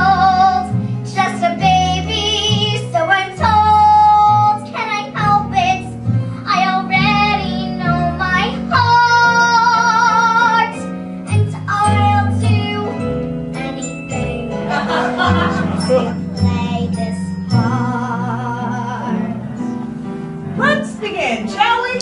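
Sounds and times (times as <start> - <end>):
girl singing a show tune: 0.0 - 14.6, 16.1 - 18.2
instrumental accompaniment: 0.0 - 22.0.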